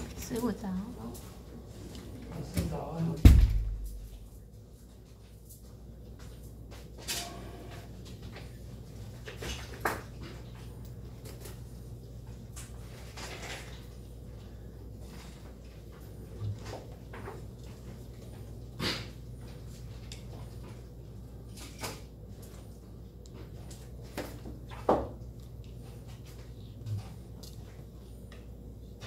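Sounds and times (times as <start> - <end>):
low hum of room tone: 0.0 - 29.0.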